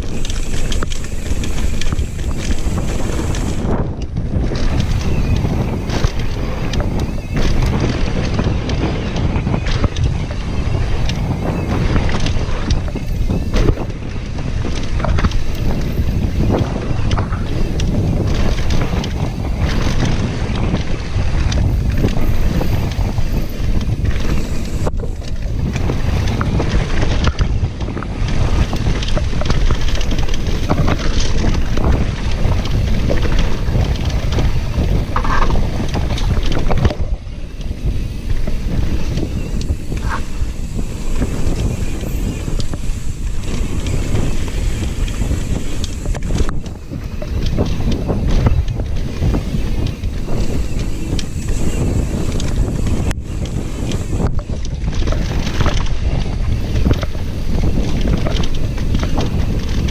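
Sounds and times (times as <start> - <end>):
bike clicks and rattles: 0.0 - 59.9
wind buffeting microphone: 0.0 - 59.9.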